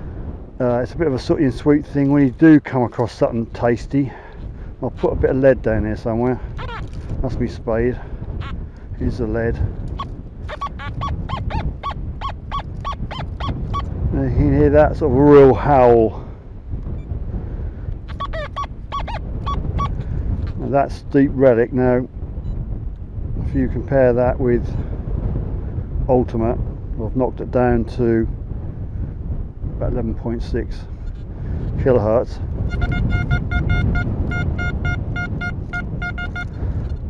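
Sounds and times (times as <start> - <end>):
metal detector howl-like tones: 6.6 - 6.9, 10.0 - 13.9, 18.1 - 20.0, 32.7 - 37.0.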